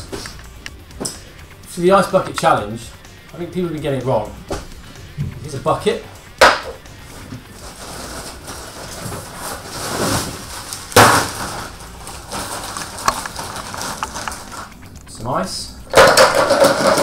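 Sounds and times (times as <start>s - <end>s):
plastic bag rustling: 7.0s - 14.8s
ice cubes crunching clatter: 7.7s - 14.7s, 16.0s - 17.0s.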